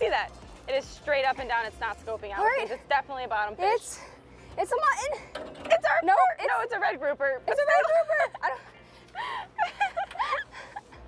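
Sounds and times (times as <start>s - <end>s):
person laughing: 7.8s - 10.9s.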